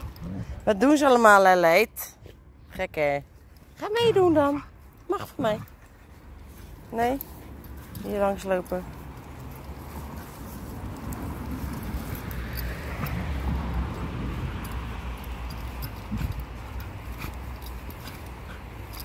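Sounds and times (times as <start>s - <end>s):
dogs scratching at dirt: 0.0s - 19.0s.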